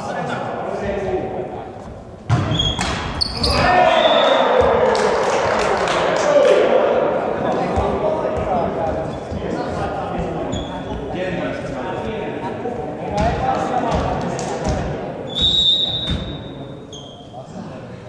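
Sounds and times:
referee whistle blast: 15.3 - 16.4.

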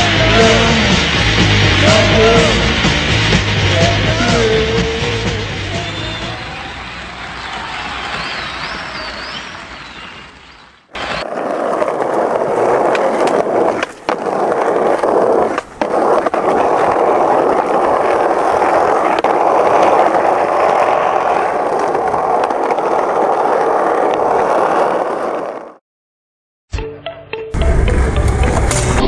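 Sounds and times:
skateboard wheels rolling on asphalt: 0.0 - 25.8.

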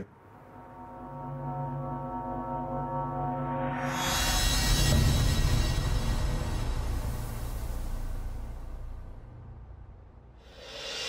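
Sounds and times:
dark sustained score tones: 0.2 - 11.0.

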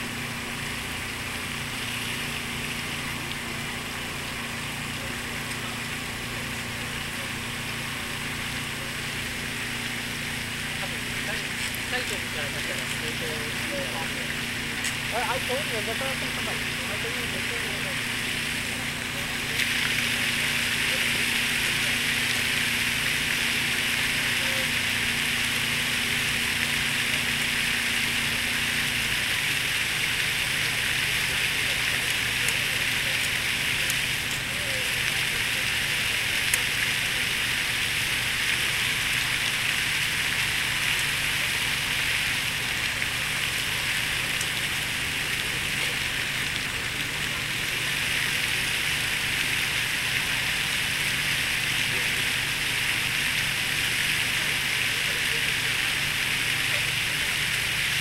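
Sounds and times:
fountain water splashing: 0.0 - 58.0.

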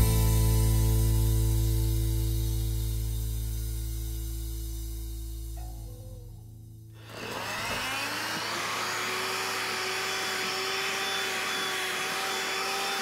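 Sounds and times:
vacuum cleaner motor whine: 7.0 - 13.0.

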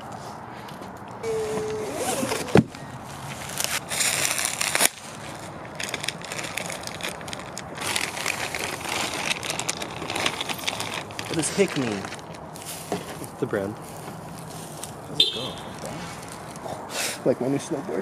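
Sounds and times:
plastic wrapping crinkling: 1.4 - 15.0.

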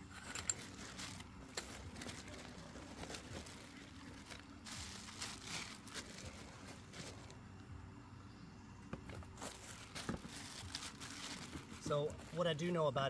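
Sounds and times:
cloth bag rustling: 0.1 - 7.4, 9.2 - 12.5.

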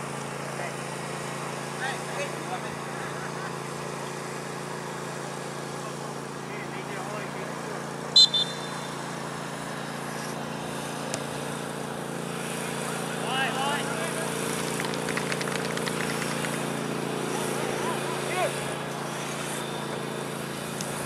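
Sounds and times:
referee's whistle double blast: 8.1 - 9.1.

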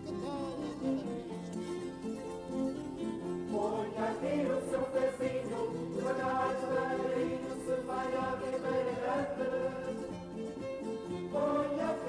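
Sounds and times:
choir singing long notes: 3.5 - 10.3, 11.2 - 12.0.

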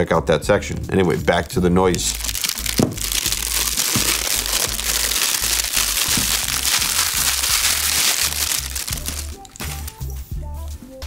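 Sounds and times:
plastic wrap crinkling: 1.4 - 10.1.

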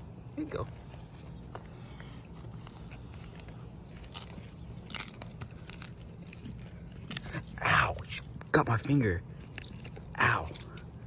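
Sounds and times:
tortoise crunching cactus: 0.1 - 11.0.

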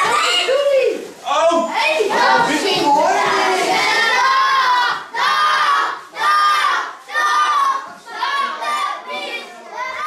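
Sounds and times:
children shouting in chorus: 1.9 - 10.0.

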